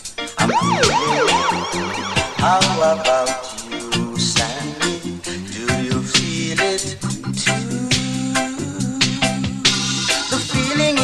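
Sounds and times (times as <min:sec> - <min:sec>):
reggae music: 0:00.0 - 0:11.0
siren sound effect wailing: 0:00.4 - 0:04.0.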